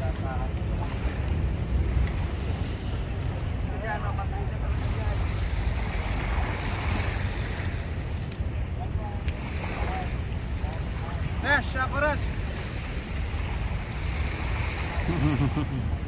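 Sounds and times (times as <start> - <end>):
small waves washing ashore: 0.0 - 16.0.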